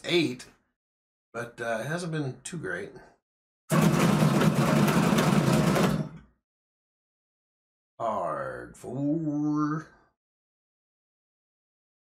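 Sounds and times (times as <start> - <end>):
dice roller rattling and whirring: 3.7 - 6.2.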